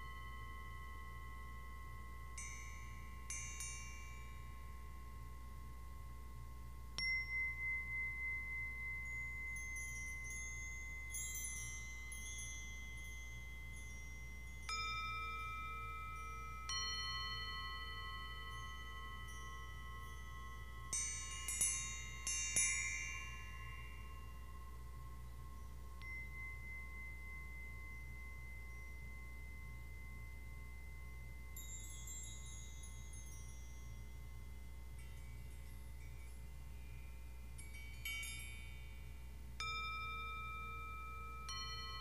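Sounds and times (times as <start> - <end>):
bright high tinkling strikes: 0.0 - 42.0
metal chimes ringing: 0.0 - 42.0.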